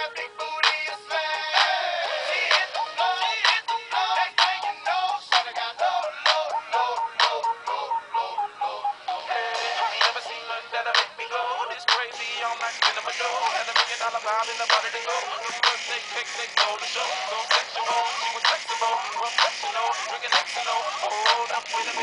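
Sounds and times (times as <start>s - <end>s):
pop music from small toy speaker: 0.0s - 22.0s.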